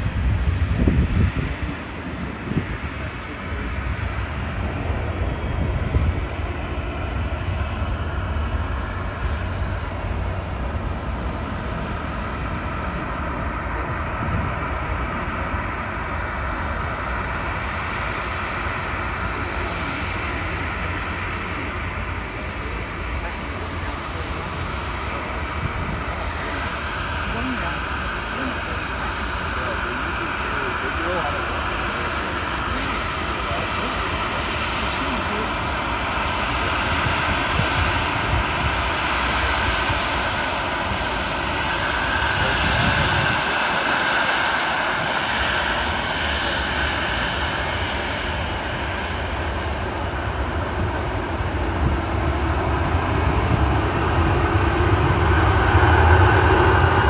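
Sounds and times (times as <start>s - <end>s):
jet engines whine and rumble: 0.0s - 57.0s.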